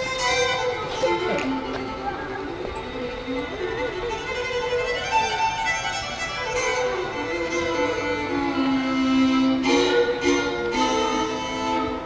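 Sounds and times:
bluegrass fiddle melody: 0:00.0 - 0:12.0.

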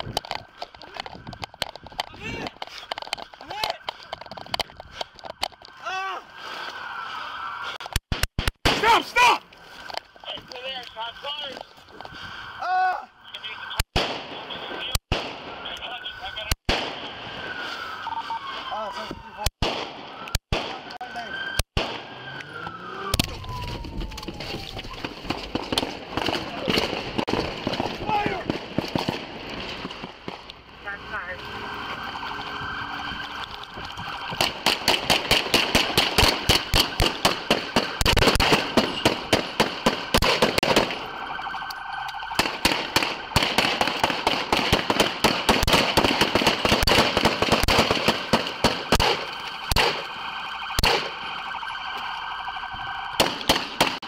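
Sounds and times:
gunshots: 0:08.1 - 0:09.2, 0:13.9 - 0:15.8, 0:16.6 - 0:17.2, 0:19.6 - 0:22.2, 0:25.0 - 0:30.4, 0:34.2 - 0:41.1, 0:42.3 - 0:52.2, 0:53.1 - 0:54.0
high electronic alarm tone: 0:30.8 - 0:34.6, 0:35.3 - 0:42.4, 0:48.2 - 0:53.2.

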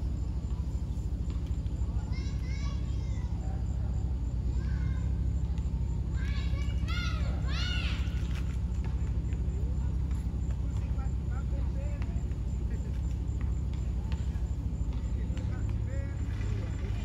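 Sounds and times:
children shouting in the distance: 0:00.0 - 0:17.0
steady low rumble: 0:00.0 - 0:17.0.

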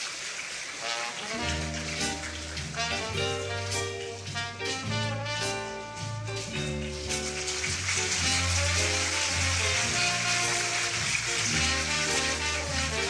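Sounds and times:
orchestra with brass playing: 0:00.8 - 0:13.0.

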